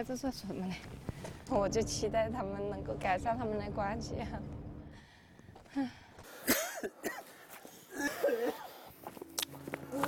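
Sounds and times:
person clearing throat: 6.4s - 7.2s.

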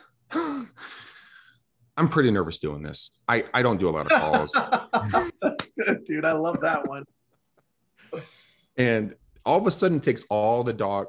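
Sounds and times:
man sighing: 0.3s - 1.4s.

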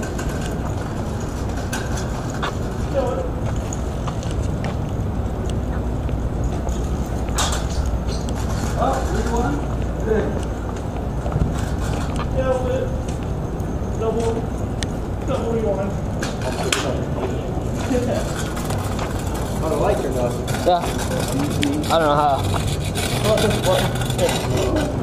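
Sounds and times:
indistinct voices: 0.0s - 25.0s.

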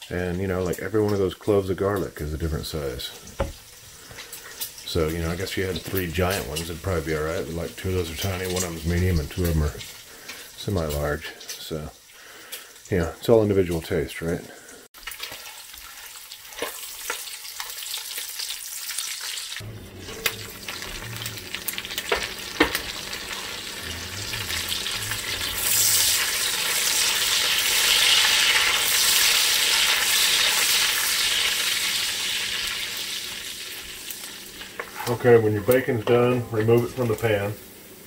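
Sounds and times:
bacon sizzling in a pot: 0.0s - 38.0s.

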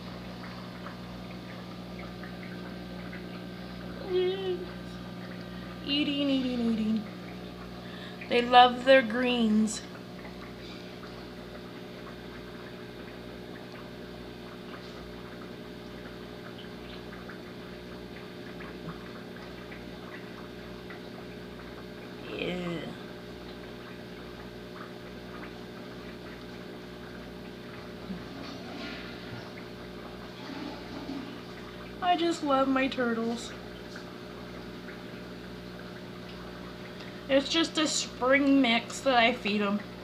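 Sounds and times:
moving water: 0.0s - 40.0s
water pump humming: 0.0s - 40.0s.

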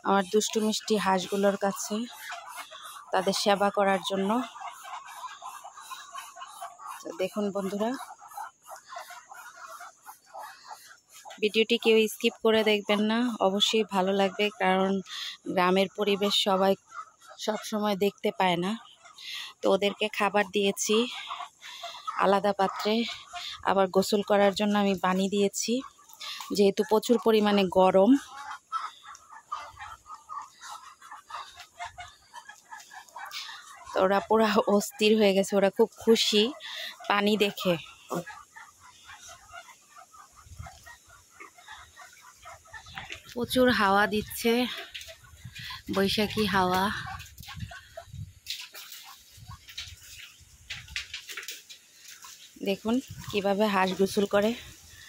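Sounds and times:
poultry calling softly: 0.0s - 15.4s, 16.2s - 17.8s, 18.8s - 24.6s, 25.8s - 55.0s
soft duck calls: 25.8s - 35.2s
rustling in dry leaves: 48.4s - 55.0s.

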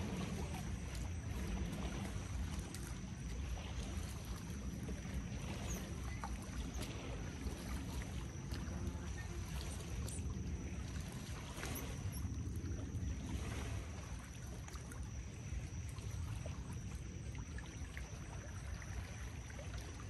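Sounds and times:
small waves lapping shoreline: 0.0s - 20.0s
wind rumbling on microphone: 0.0s - 20.0s.

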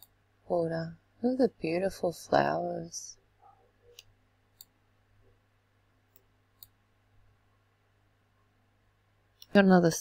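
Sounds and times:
low steady hum: 0.0s - 10.0s
computer mouse clicks: 3.9s - 4.8s, 6.1s - 6.8s.

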